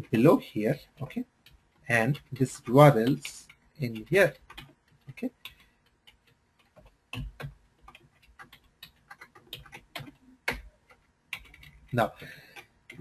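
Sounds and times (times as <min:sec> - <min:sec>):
mouse and keyboard clicking: 0:00.8 - 0:13.0.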